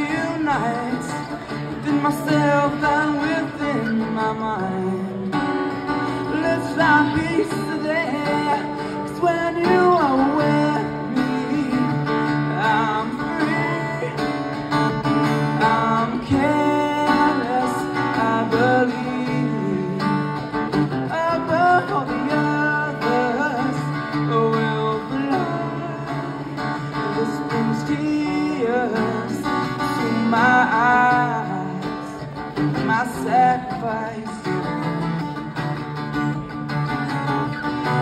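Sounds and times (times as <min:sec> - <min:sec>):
acoustic guitar: 0:00.0 - 0:38.0
man singing: 0:00.0 - 0:38.0.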